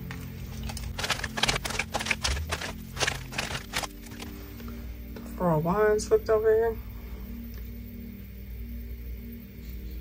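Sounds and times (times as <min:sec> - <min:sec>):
cards flicking and tapping: 0:00.0 - 0:04.3
soft background music: 0:00.0 - 0:10.0.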